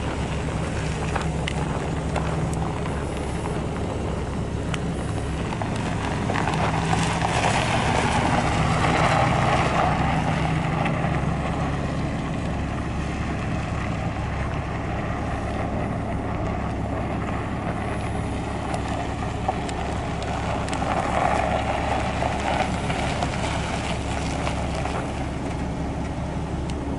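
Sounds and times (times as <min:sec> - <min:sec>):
pickup truck engine running: 0:00.0 - 0:26.9.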